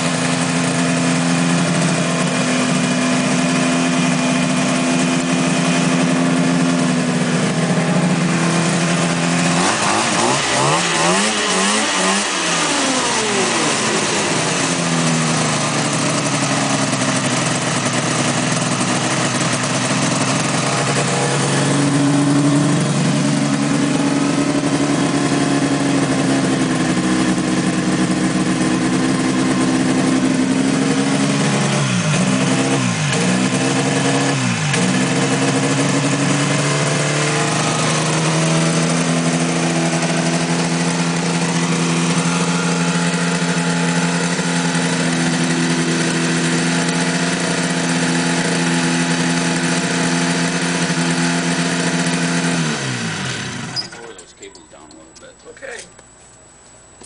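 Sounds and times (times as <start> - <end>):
snowmobile engine running: 0.0 - 54.1.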